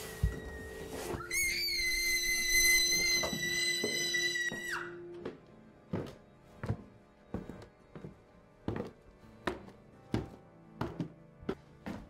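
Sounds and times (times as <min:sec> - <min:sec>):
footsteps on wooden floor: 0:02.7 - 0:12.0.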